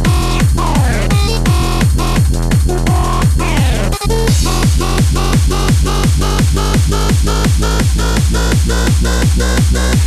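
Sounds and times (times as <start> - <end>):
deep bass line: 0.0 - 10.0
fast kick drum: 0.0 - 10.0.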